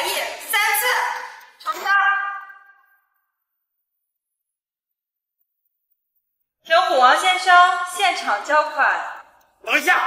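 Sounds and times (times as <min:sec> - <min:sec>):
woman's voice with echo: 0:00.0 - 0:02.8, 0:06.7 - 0:09.3.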